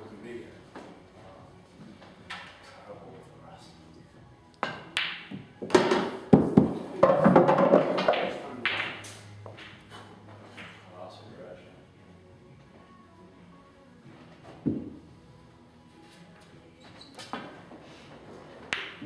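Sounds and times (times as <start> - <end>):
cue striking ball: 4.6 - 9.8
pool balls clacking together: 4.6 - 9.9.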